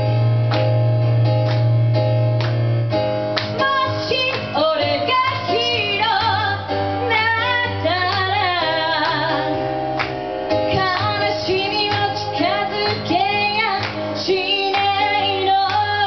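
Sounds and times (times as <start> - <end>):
electric keyboard chords: 0.0 - 16.0
woman singing into microphone: 3.6 - 9.6, 10.6 - 16.0.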